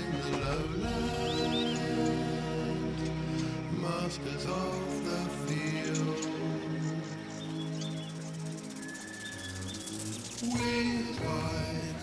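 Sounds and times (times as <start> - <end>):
person singing: 0.0 - 3.0, 3.7 - 6.5, 10.4 - 12.0.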